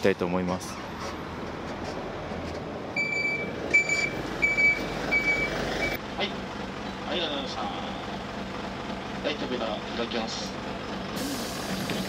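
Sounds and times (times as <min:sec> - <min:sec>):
bus engine idling: 0:00.0 - 0:12.0
high electronic warning beeps: 0:03.0 - 0:06.0.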